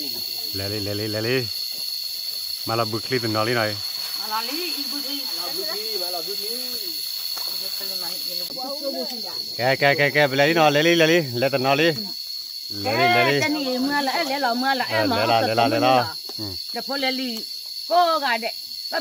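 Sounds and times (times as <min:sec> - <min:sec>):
people talking: 0:00.0 - 0:01.5, 0:02.7 - 0:12.1, 0:12.7 - 0:19.0
high-pitched insect buzz: 0:00.0 - 0:19.0.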